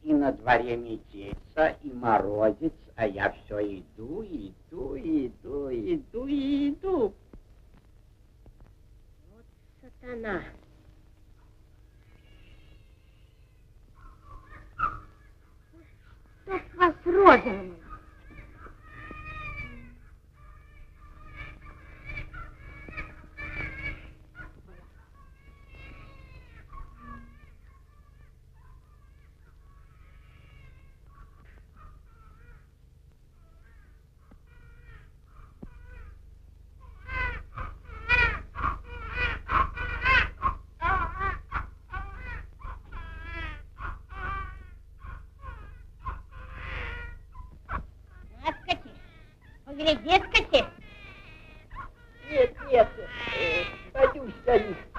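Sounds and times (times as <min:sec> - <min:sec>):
person wailing and crying: 0:49.7 - 0:50.9, 0:52.2 - 0:54.9.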